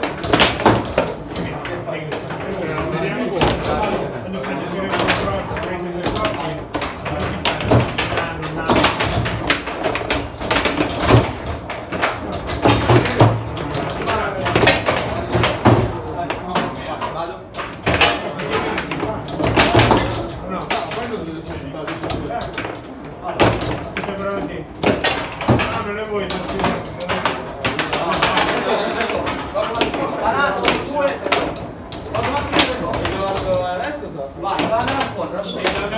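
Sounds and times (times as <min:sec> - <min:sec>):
foosball ball clacks: 0:00.0 - 0:35.9
indistinct talk: 0:00.0 - 0:35.9.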